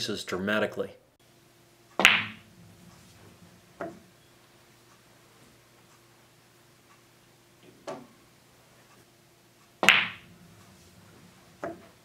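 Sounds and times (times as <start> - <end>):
pool balls clicking: 2.0 - 4.2, 9.8 - 12.0.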